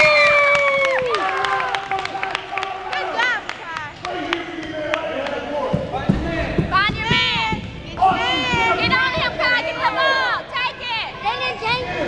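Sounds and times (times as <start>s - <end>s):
voices calling out in gym: 0.0s - 12.0s
basketball bouncing on court: 5.7s - 9.6s.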